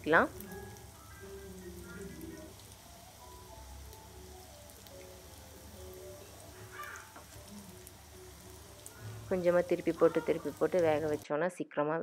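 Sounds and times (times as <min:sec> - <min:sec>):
food sizzling in hot oil: 0:00.0 - 0:11.2
soft background music: 0:00.0 - 0:12.0.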